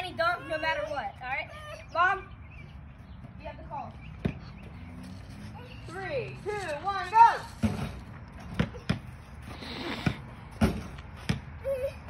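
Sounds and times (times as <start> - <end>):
basketball bouncing on dirt: 4.0 - 5.1, 10.0 - 11.6.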